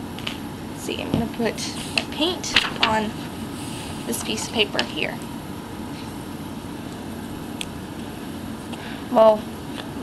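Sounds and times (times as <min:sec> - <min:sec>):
steady hum and hiss: 0:00.0 - 0:10.0.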